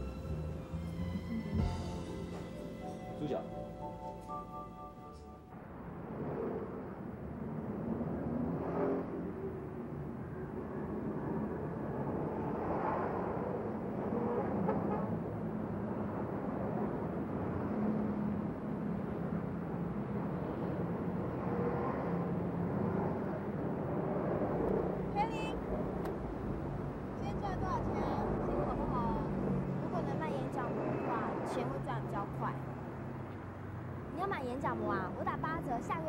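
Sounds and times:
cars and trucks passing: 0:00.0 - 0:36.0.

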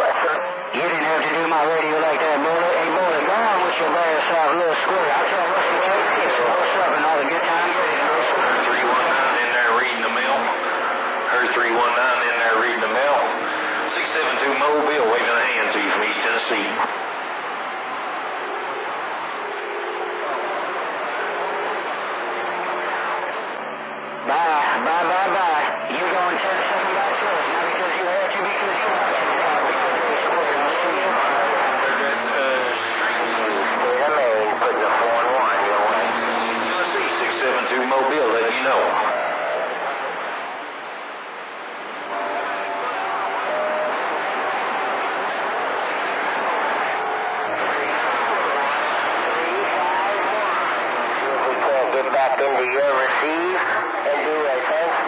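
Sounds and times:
garbled radio voices: 0:00.0 - 0:55.0.

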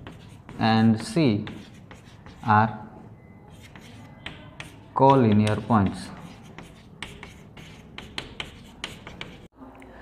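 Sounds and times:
chalk scratching on chalkboard: 0:00.0 - 0:02.7, 0:03.5 - 0:09.5.

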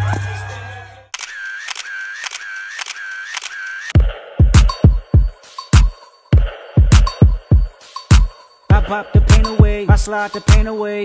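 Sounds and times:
camera shutter clicks: 0:01.2 - 0:04.0
whirring tone: 0:01.2 - 0:04.0
bass-heavy party music: 0:04.0 - 0:11.0.

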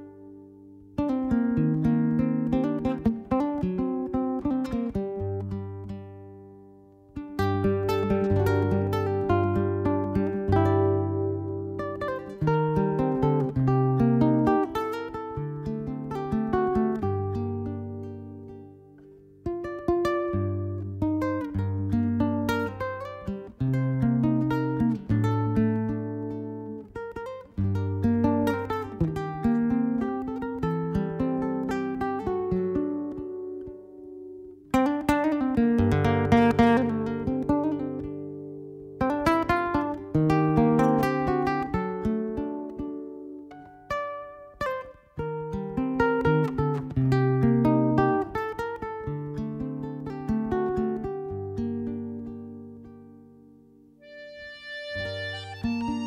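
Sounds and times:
classical guitar melody: 0:00.0 - 0:56.0
strummed guitar chords: 0:01.0 - 0:56.0.

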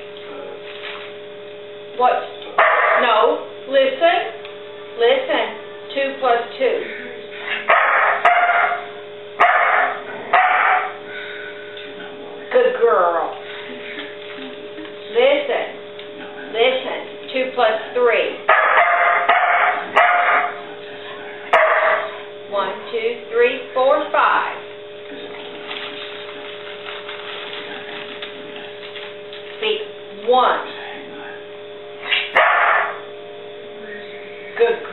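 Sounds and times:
electrical hum: 0:00.0 - 0:34.9
dog barking: 0:02.6 - 0:03.2, 0:07.5 - 0:11.0, 0:18.5 - 0:20.6, 0:21.5 - 0:22.2, 0:32.1 - 0:33.0.

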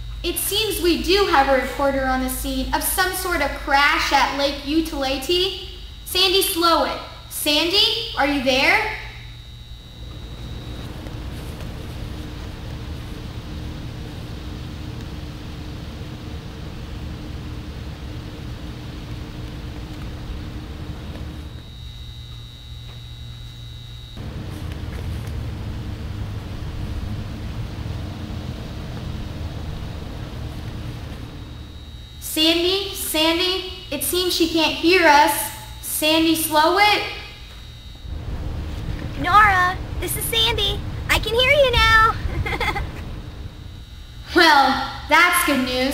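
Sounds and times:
faint hum: 0:00.0 - 0:45.9
static hiss and rumble: 0:00.0 - 0:45.9
thin high tone: 0:28.2 - 0:45.9.

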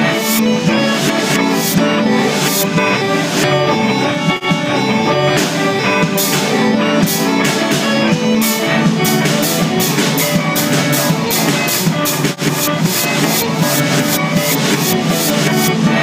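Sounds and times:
rock band playing live: 0:00.0 - 0:16.0.

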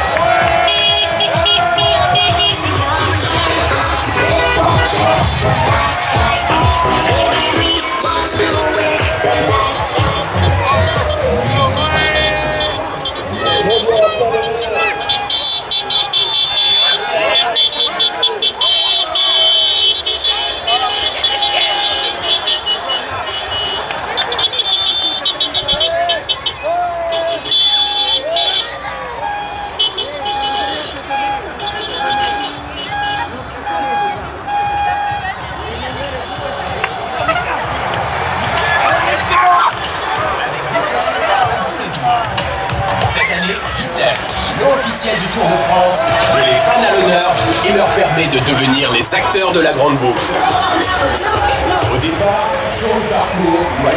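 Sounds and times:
vehicles passing: 0:00.0 - 0:53.9
voices: 0:00.0 - 0:53.9
music: 0:00.1 - 0:13.7, 0:41.3 - 0:44.6
horn-like beeping pulses: 0:00.5 - 0:26.5, 0:27.4 - 0:35.7.

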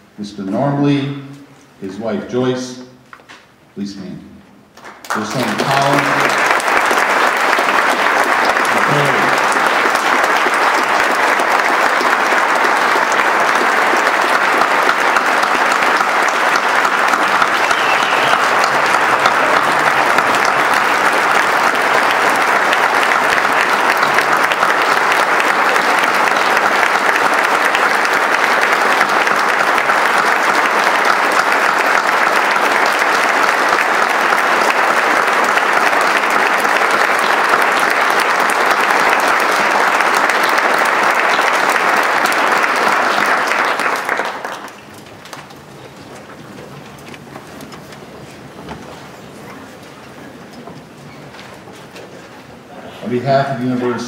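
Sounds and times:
large audience applauding: 0:04.8 - 0:54.0.

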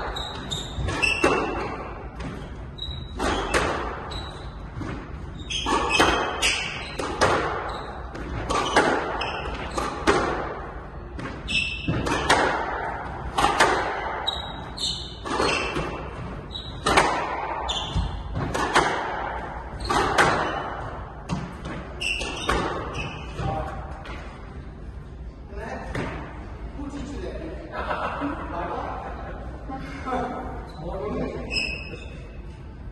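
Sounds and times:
shoes squeaking on wooden floor: 0:00.0 - 0:10.1, 0:11.3 - 0:12.3, 0:14.1 - 0:18.6, 0:19.7 - 0:23.7
squash ball hitting racket and wall: 0:00.0 - 0:24.5.

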